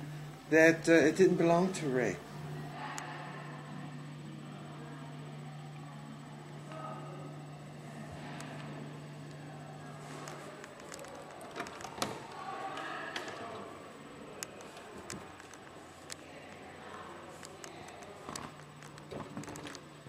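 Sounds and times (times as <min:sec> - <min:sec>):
faint indistinct murmuring: 0:00.0 - 0:20.0
steady low hum: 0:00.0 - 0:20.0.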